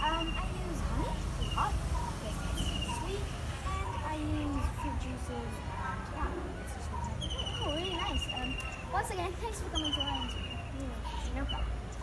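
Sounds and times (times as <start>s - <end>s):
dog yelping: 0.0s - 6.1s.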